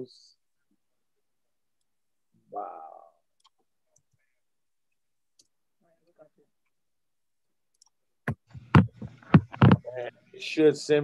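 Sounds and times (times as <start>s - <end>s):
faint voice: 2.5s - 3.2s.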